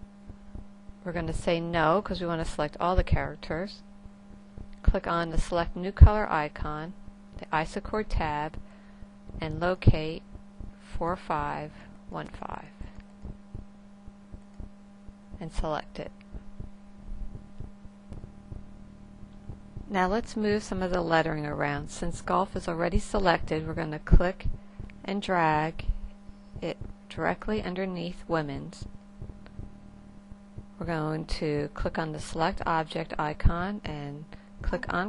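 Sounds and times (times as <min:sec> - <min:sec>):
electrical hum: 0:00.0 - 0:35.0
person speaking: 0:09.3 - 0:13.7, 0:15.3 - 0:26.0, 0:26.6 - 0:30.0
faint low ticks: 0:17.3 - 0:19.9.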